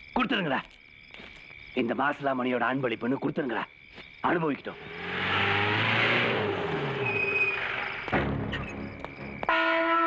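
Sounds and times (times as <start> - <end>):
jeep engine driving up: 4.8 - 8.3.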